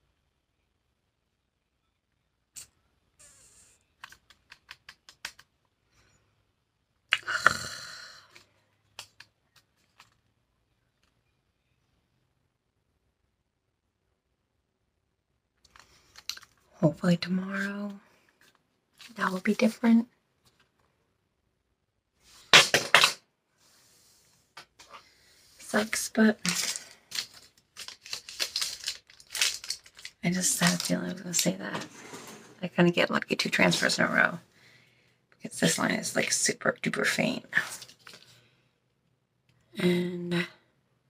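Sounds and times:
rustling scrape: 31.7 - 32.7.

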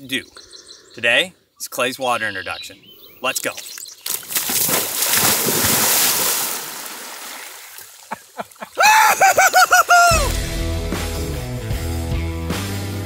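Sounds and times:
big water splash: 4.3 - 8.0
rock music: 10.1 - 13.0.

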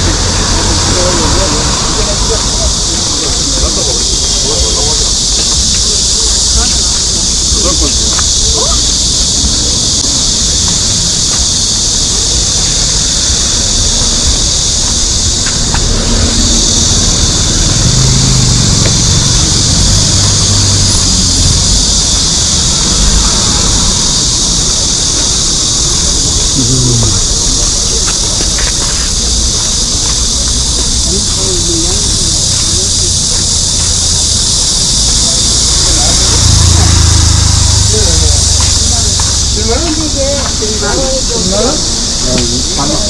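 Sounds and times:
cicadas chorus: 0.0 - 43.0
faint voices: 0.0 - 43.0
low street rumble: 0.0 - 43.0.

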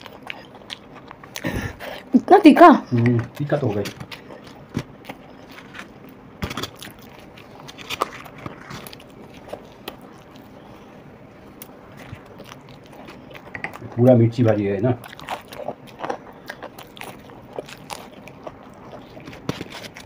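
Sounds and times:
crunchy chewing: 0.0 - 2.1, 2.9 - 20.0.

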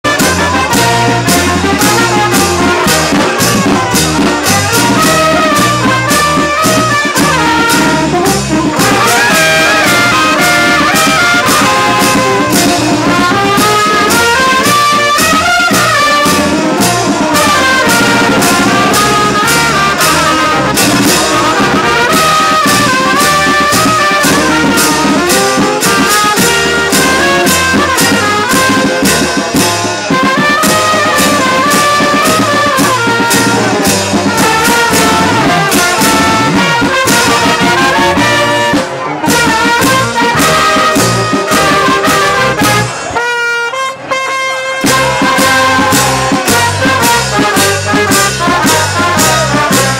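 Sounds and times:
brass band playing: 0.0 - 49.9
held brass chord: 0.0 - 49.9.

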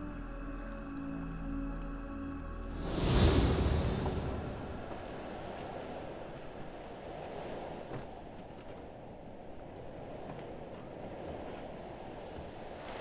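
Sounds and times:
low wind rumbling: 2.5 - 13.0.

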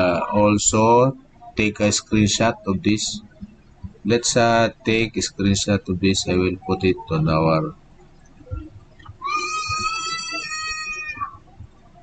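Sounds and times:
high-pitched animal call: 9.2 - 11.5.

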